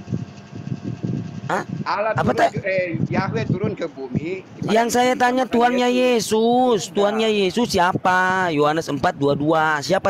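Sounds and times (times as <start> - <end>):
crackly background hum: 0.0 - 9.0
man speaking: 1.5 - 10.0.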